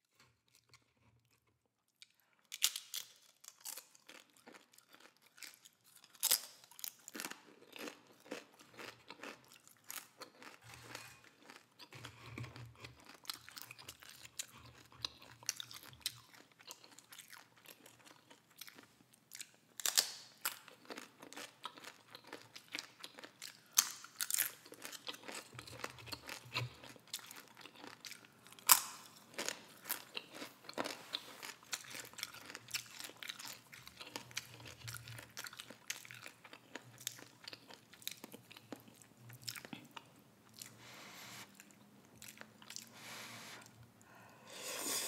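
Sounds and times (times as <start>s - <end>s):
chewing: 0.1s - 43.8s
chips crunching: 20.8s - 38.9s.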